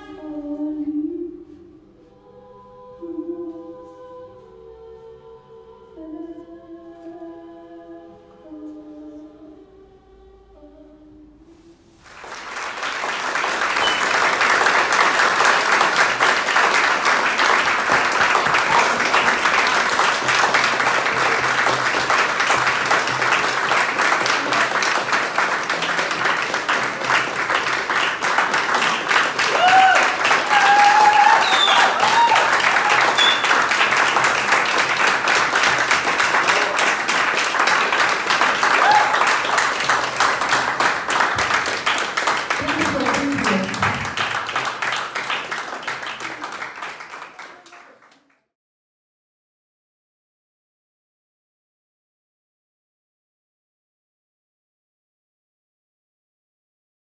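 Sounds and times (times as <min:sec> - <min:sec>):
large audience applauding: 0:12.0 - 0:48.5
crowd calling out: 0:29.4 - 0:33.8, 0:38.6 - 0:39.4.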